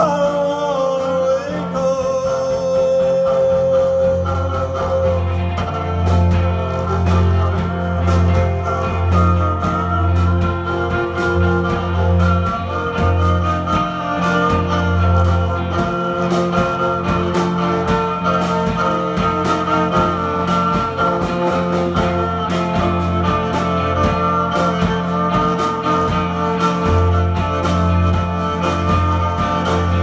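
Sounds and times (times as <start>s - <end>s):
bowed viola: 0.0s - 30.0s
strummed guitar: 0.0s - 30.0s.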